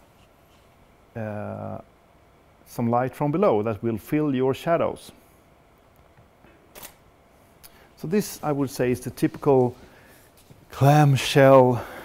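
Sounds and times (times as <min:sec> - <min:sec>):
camera shutter click: 0:06.7 - 0:07.0.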